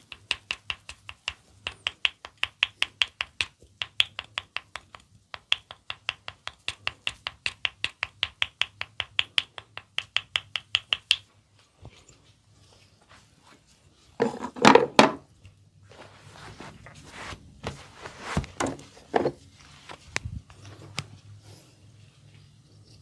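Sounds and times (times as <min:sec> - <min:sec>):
wooden tool clicking: 0:00.0 - 0:11.3.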